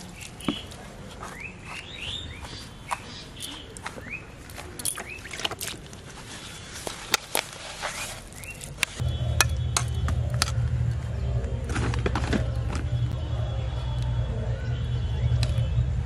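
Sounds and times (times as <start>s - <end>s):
bird chirps: 0.2s - 5.4s
engine rumble: 8.2s - 16.0s.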